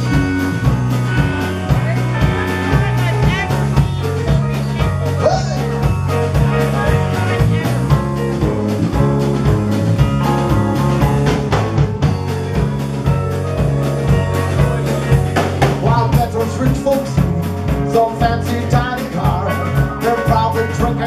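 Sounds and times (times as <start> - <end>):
rock band music: 0.0 - 21.0.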